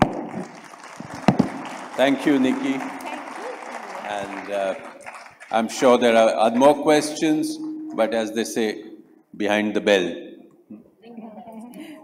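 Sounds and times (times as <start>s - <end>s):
audience applauding: 0.0s - 7.1s.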